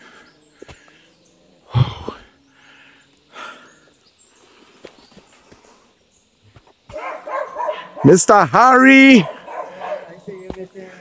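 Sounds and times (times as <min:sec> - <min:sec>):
dog barking: 0:06.9 - 0:08.2, 0:09.2 - 0:10.3.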